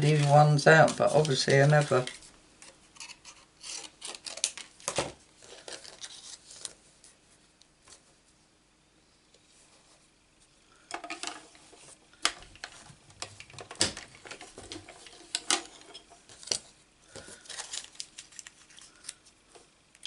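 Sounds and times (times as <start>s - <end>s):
light rustling of card: 0.0s - 4.7s, 5.4s - 7.2s, 16.2s - 19.7s.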